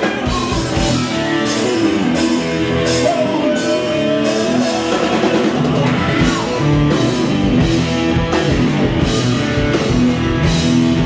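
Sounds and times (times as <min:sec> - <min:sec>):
bass guitar: 0:00.0 - 0:11.0
blues-rock band playing: 0:00.0 - 0:11.0
drum kit: 0:00.0 - 0:11.0
electric guitars: 0:00.0 - 0:11.0.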